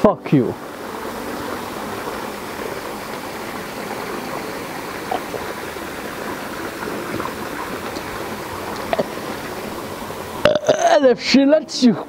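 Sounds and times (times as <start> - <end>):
rushing water-like background noise: 0.0 - 12.0
man swallowing: 8.8 - 9.2, 10.4 - 11.0.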